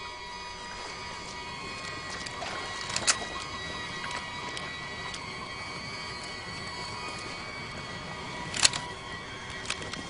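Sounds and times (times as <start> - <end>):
high multi-tone hum: 0.0 - 10.0.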